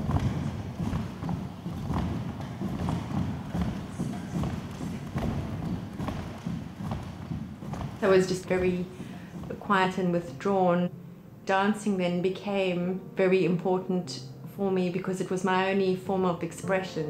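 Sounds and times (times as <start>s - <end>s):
pointe shoes tapping on wood floor: 0.0s - 10.4s.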